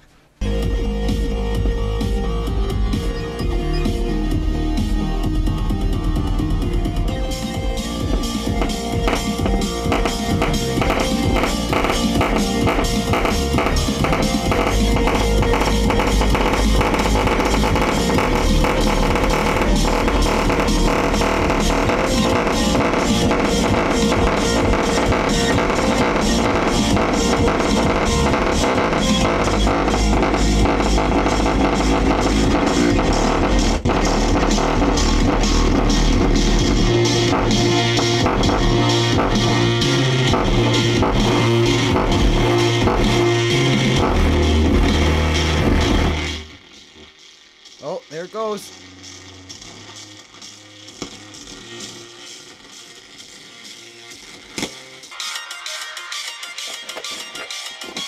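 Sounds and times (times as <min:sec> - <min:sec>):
music through stereo speakers: 0:00.0 - 0:58.0
heavy low bass notes: 0:00.4 - 0:46.6.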